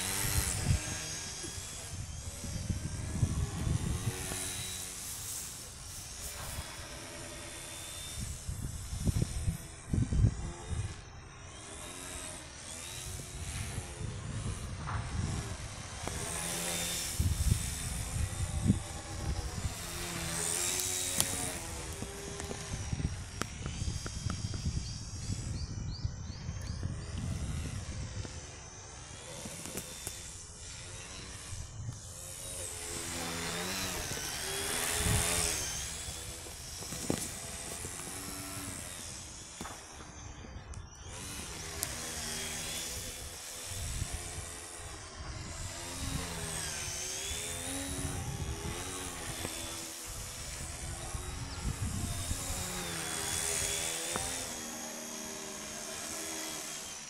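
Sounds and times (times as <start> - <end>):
model plane motor whining: 0.0 - 57.0.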